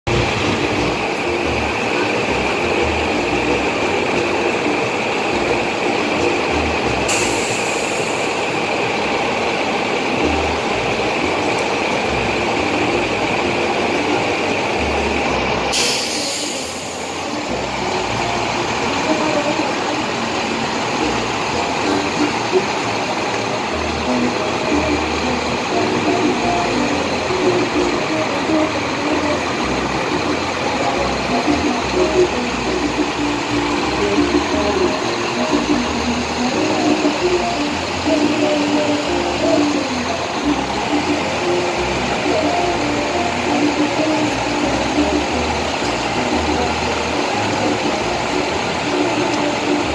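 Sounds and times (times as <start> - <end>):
heavy vehicle noise: 0.0 - 49.9
murmur of voices: 0.1 - 49.9
short hisses: 15.7 - 17.3.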